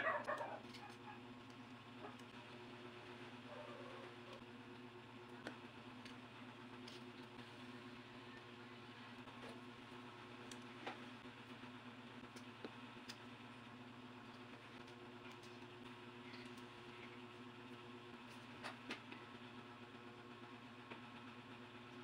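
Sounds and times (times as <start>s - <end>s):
faint hum: 0.0s - 22.0s.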